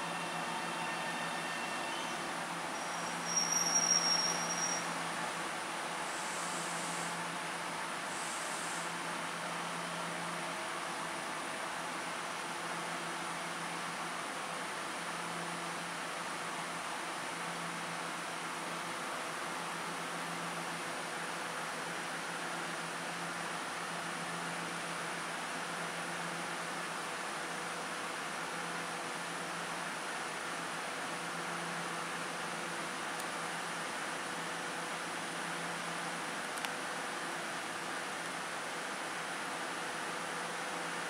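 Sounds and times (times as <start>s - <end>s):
electric train hum and hiss: 0.0s - 41.0s.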